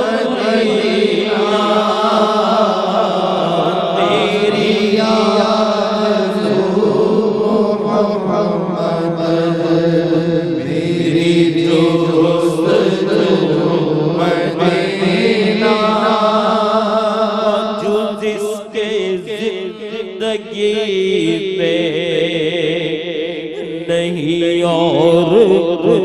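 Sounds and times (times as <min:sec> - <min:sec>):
man singing devotional song: 0:00.0 - 0:26.0.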